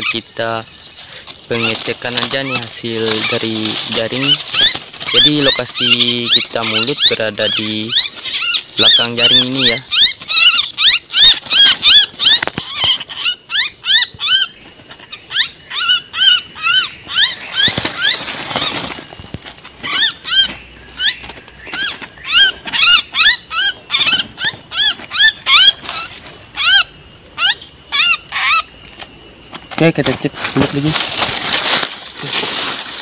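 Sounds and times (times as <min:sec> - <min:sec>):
cicadas droning: 0:00.0 - 0:33.0
small bird shrill calls: 0:19.8 - 0:28.7.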